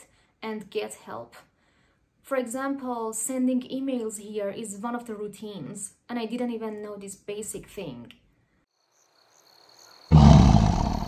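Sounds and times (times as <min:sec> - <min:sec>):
faint insect chirping: 0:08.7 - 0:11.0
big cat roaring: 0:10.1 - 0:11.0.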